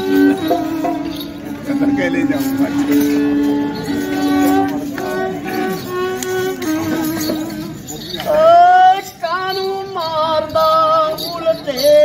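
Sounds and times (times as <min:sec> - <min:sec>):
high-pitched folk singing: 0:00.0 - 0:12.0.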